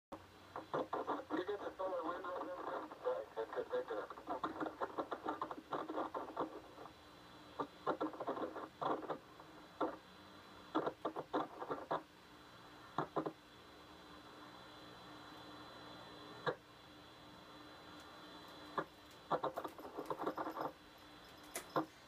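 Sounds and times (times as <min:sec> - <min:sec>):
voices over tinny radio: 0:00.5 - 0:10.0, 0:17.3 - 0:20.8.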